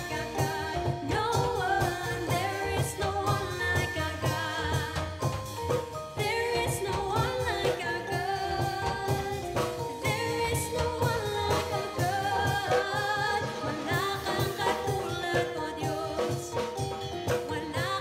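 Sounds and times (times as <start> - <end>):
backing singer: 0.0 - 18.0
bass guitar: 0.0 - 18.0
drums keeping a steady beat: 0.0 - 18.0
woman singing lead: 0.0 - 18.0.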